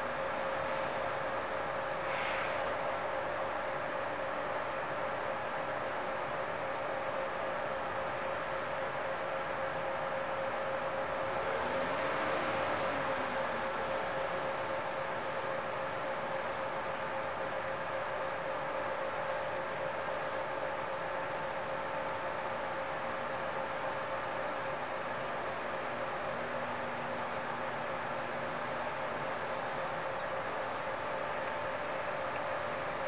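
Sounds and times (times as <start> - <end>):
mechanical hum with whine: 0.0 - 33.0.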